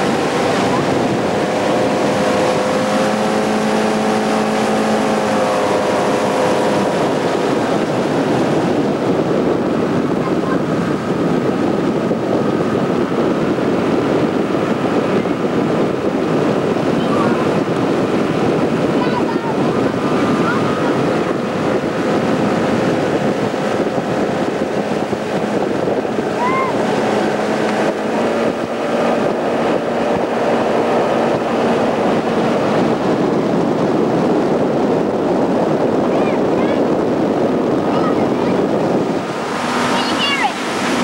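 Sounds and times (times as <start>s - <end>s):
motorboat engine running: 0.0s - 41.0s
rushing water and spray: 0.0s - 41.0s
wind buffeting microphone: 0.0s - 41.0s.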